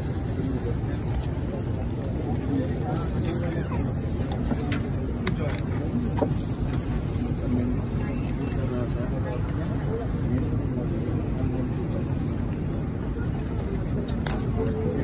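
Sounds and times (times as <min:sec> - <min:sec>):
airliner cabin rumble: 0:00.0 - 0:15.0
indistinct passenger chatter: 0:00.0 - 0:15.0.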